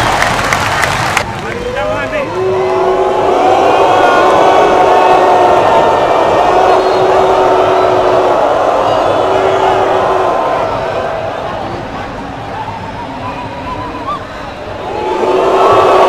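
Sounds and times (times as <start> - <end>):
stadium crowd booing: 1.3 - 16.0.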